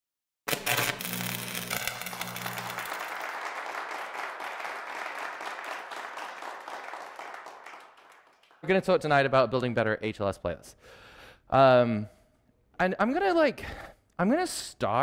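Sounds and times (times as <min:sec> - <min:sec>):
audience applause: 0:01.9 - 0:08.8.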